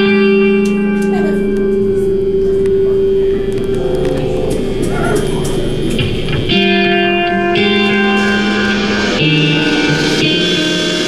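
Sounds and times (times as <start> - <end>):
amplifier hum and noise: 0.0 - 11.0
electric guitar note ringing: 0.0 - 11.0
sliding guitar pitches: 0.0 - 11.0.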